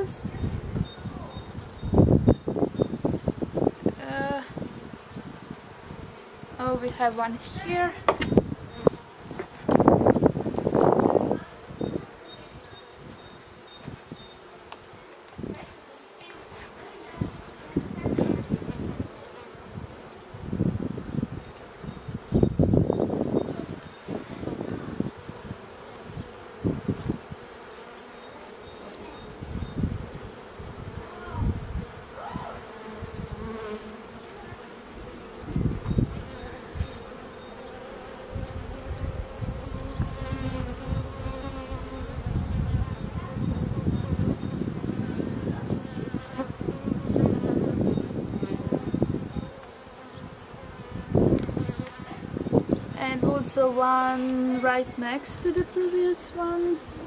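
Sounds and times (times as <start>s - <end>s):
honey bees buzzing: 0.0s - 57.0s.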